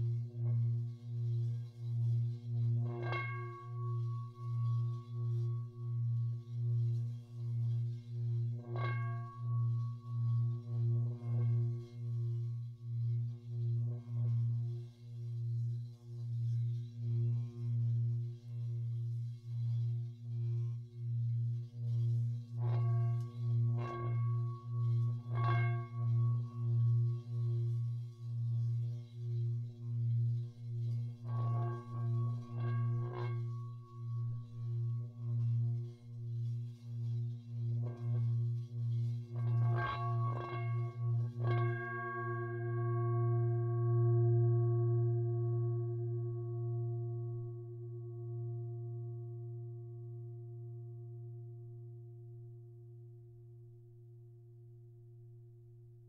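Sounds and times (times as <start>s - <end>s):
singing bowl deep hum: 0.0s - 56.0s.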